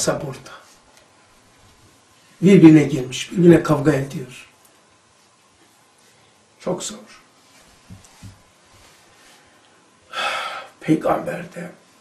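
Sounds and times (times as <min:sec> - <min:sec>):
man speaking: 0:00.0 - 0:00.7, 0:02.4 - 0:04.5, 0:06.6 - 0:07.3, 0:10.8 - 0:11.8
man breathing noisily: 0:10.1 - 0:10.8.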